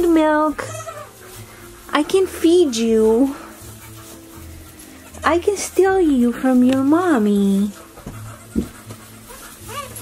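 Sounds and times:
goat kid bleating: 0.5s - 1.2s, 8.1s - 10.0s.

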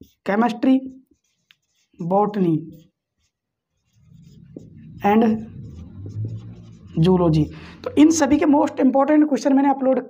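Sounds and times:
marker scratching on whiteboard: 0.0s - 8.7s
low background hum: 3.9s - 9.1s.

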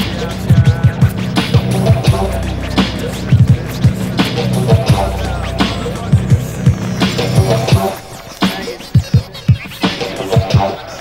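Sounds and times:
instrumental hip hop beat: 0.0s - 11.0s.

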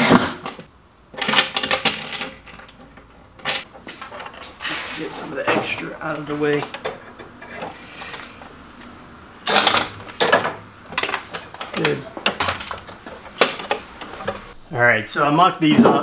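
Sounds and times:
metal strapping clinking: 9.4s - 14.6s.

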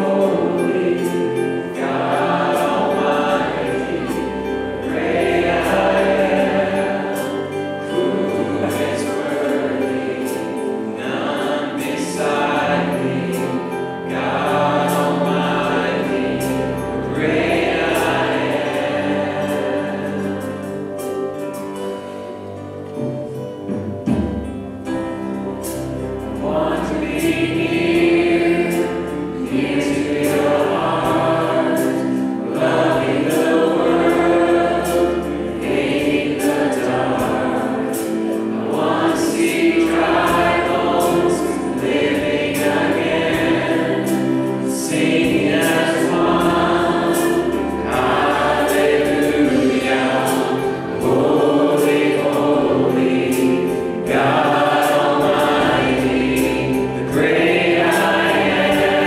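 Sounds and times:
group singing worship song: 0.0s - 22.3s, 24.4s - 59.0s
acoustic guitar: 0.0s - 59.0s
keyboard: 0.0s - 59.0s.

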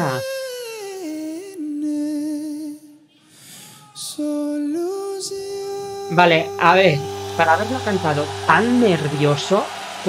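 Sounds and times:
man singing long note: 3.9s - 9.6s.

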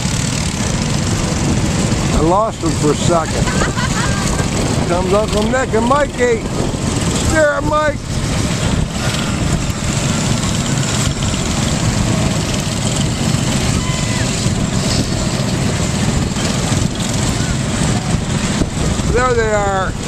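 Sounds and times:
go-kart engines running: 0.0s - 20.0s.

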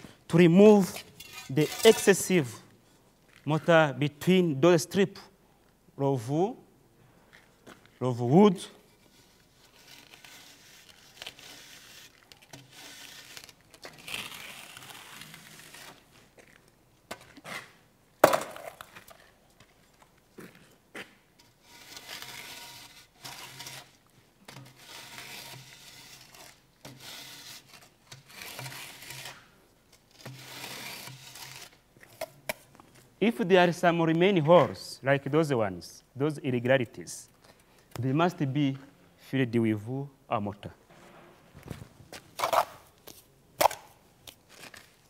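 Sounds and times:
straightedge scraping mortar: 0.0s - 2.7s, 8.8s - 16.0s, 21.4s - 32.3s.

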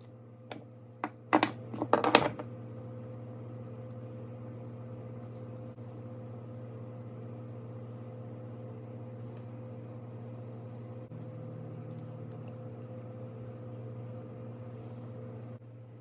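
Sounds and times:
steady low hum: 0.0s - 16.0s
knocks and clatter on wooden workbench: 0.5s - 2.5s.

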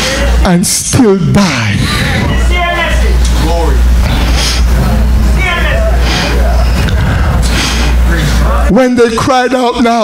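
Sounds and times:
low rumble: 1.4s - 8.7s.

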